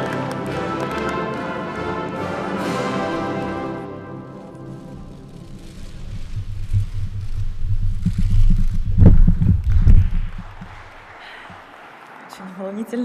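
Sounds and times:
microphone handling noise: 5.7 - 10.9.

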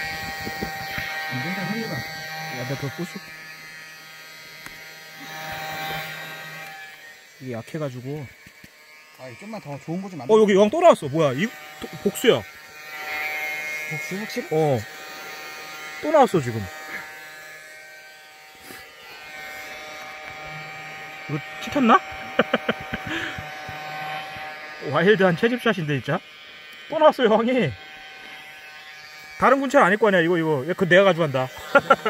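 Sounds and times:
small battery motor buzzing: 0.0 - 32.0
insect vacuum motor hum: 18.6 - 25.6.

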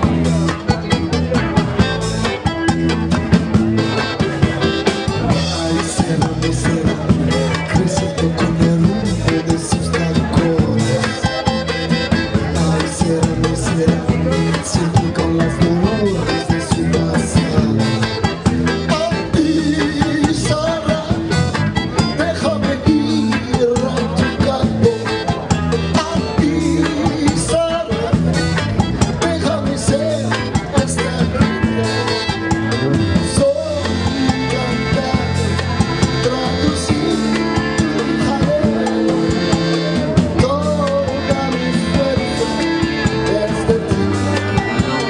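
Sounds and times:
live band playing upbeat music: 0.0 - 45.0
man singing: 0.0 - 45.0.

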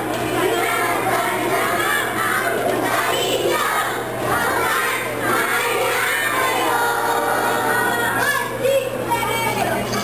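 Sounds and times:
children singing and shouting: 0.0 - 9.9.

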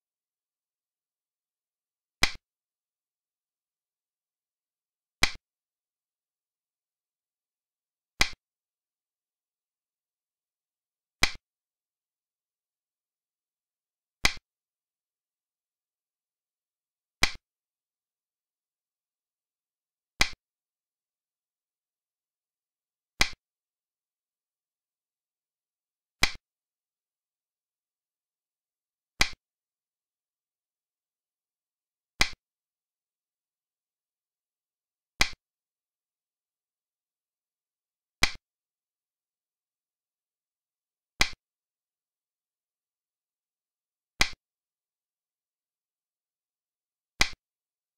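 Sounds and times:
game piece click: 2.2 - 2.4, 11.2 - 11.4, 17.2 - 17.4, 26.2 - 26.4.

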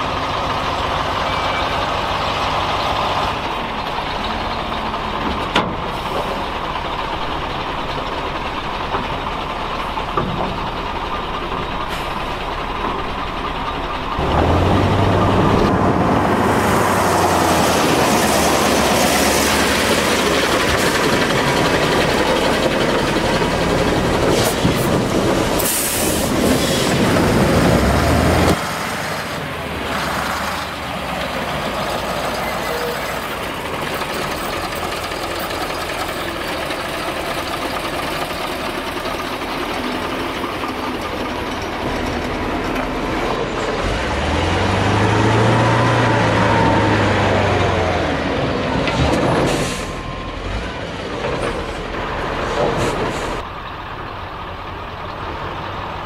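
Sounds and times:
truck diesel engine under load: 0.0 - 56.0.

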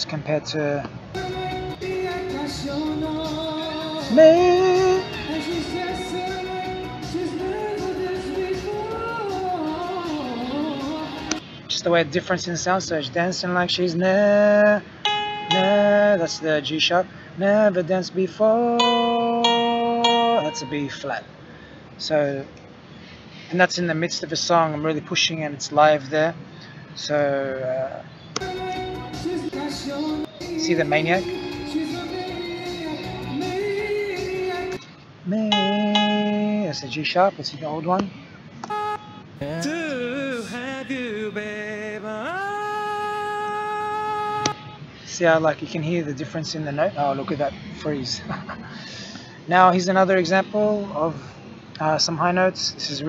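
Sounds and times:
man singing a held high note: 1.2 - 11.3, 15.5 - 16.6, 38.7 - 44.7
backing music: 1.2 - 11.4, 28.4 - 34.8, 38.7 - 44.6.

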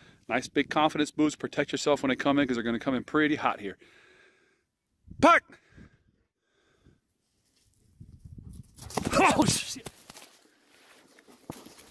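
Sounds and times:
dog paws running on grass: 7.4 - 11.9.

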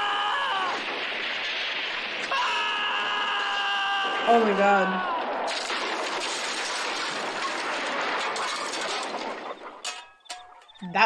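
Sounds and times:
timber breaking: 0.0 - 4.4, 5.0 - 10.8
car crashing into barn: 5.2 - 10.6.

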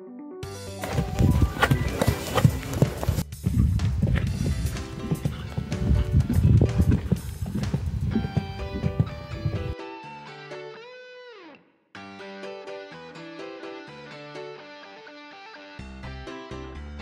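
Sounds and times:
background music: 0.0 - 11.4, 12.0 - 17.0
horse hoofbeats on sand: 0.6 - 9.8.

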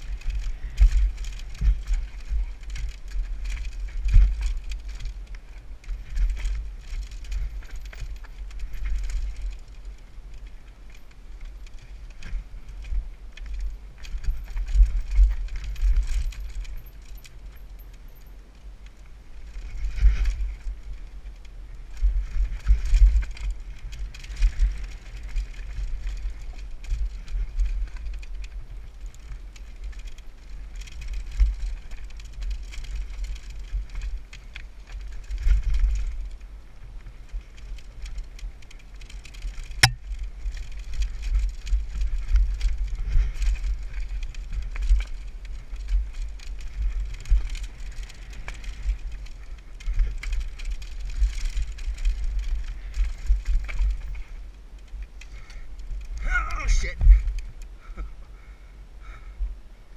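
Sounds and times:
bike chain and frame rattling: 0.0 - 59.2
low wind rumble: 0.0 - 59.9.

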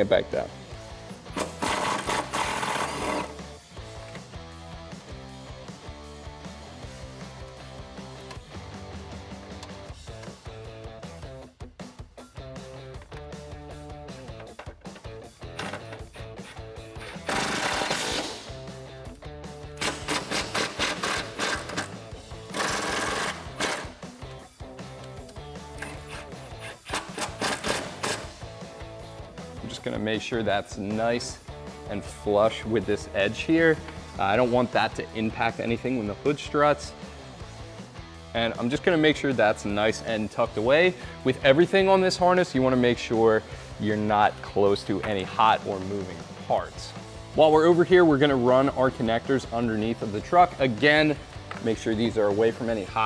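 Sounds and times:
background music: 0.0 - 53.0.

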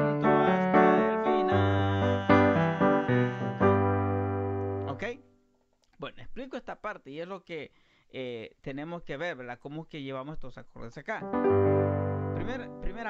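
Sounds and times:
electronic keyboard piano chords: 0.0 - 5.2, 11.2 - 13.0.

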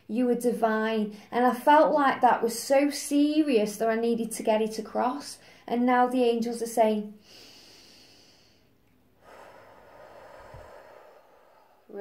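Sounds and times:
woman breathing audibly: 7.2 - 12.0.

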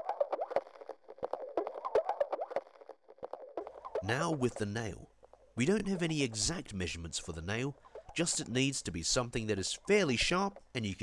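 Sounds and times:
sharp tape clicks: 0.0 - 11.0.

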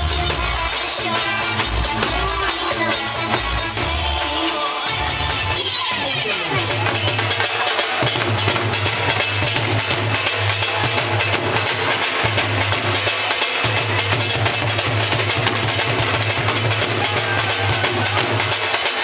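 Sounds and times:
dhol drums playing fast rhythm: 0.0 - 19.0.

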